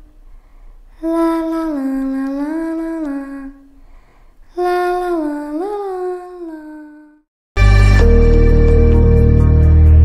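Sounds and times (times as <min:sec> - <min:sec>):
person humming a slow tune: 0:00.9 - 0:03.8, 0:04.5 - 0:07.3.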